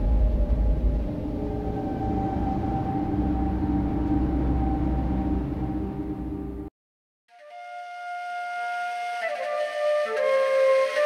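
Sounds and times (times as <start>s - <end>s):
deep impact rumble: 0.0s - 6.7s
low sustained drone tones: 0.0s - 6.7s.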